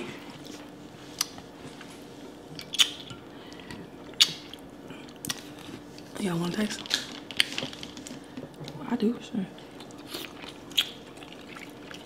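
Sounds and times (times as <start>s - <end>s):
chewing and wet mouth noises: 2.5s - 3.1s, 9.6s - 12.0s.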